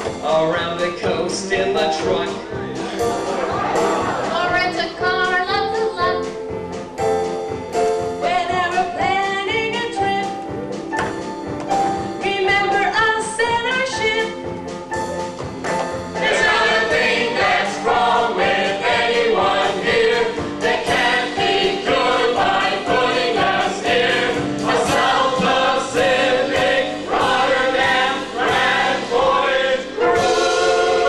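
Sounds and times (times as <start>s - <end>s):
musical accompaniment: 0.0s - 31.0s
group of voices singing: 16.2s - 31.0s.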